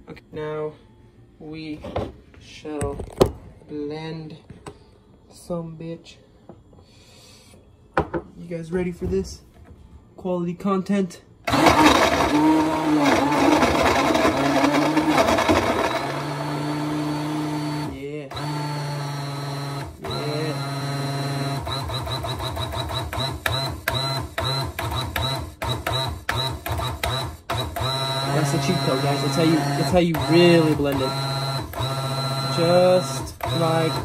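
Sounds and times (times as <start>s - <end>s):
blender motor running: 11.5s - 34.0s.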